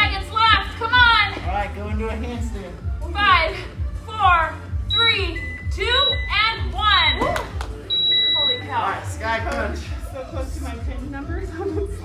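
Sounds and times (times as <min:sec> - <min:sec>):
background music: 0:00.0 - 0:12.0
electronic timer beeps: 0:04.9 - 0:07.3, 0:07.9 - 0:08.8.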